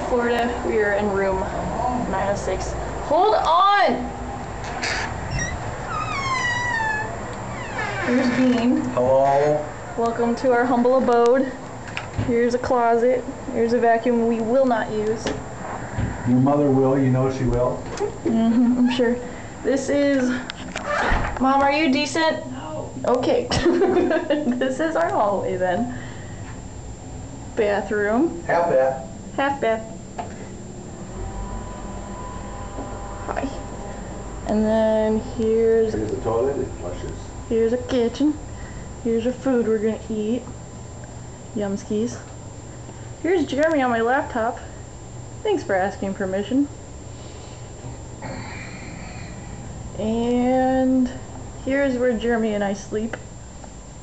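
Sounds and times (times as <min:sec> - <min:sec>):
exhaust fan humming: 0:00.0 - 0:54.0
door hinge squeaking: 0:04.6 - 0:09.7
faint even whine: 0:25.9 - 0:42.0.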